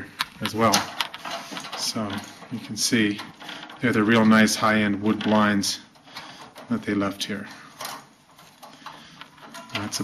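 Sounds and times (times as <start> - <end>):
man speaking: 0.0 - 1.0, 1.7 - 5.9, 6.7 - 7.6, 9.7 - 10.0.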